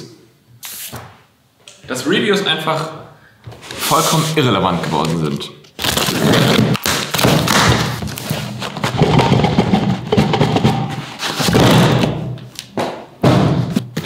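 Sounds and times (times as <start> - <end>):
tape tearing: 5.0 - 9.0.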